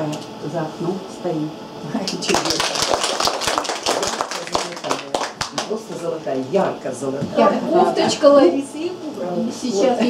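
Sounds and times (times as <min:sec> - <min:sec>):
small audience clapping: 0:02.0 - 0:06.2.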